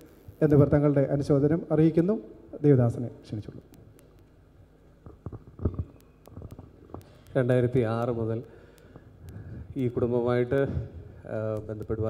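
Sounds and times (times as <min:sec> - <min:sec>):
microphone handling thumps: 0:05.0 - 0:07.0.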